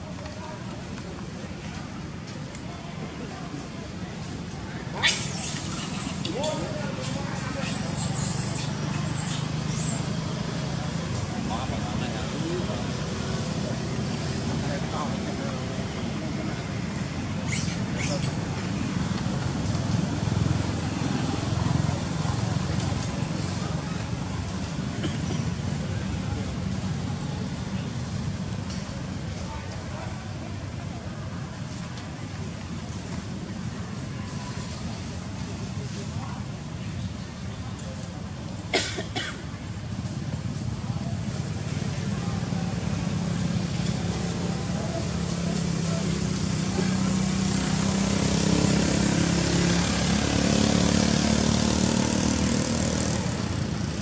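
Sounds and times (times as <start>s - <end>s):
outdoor background noise: 0.0s - 54.0s.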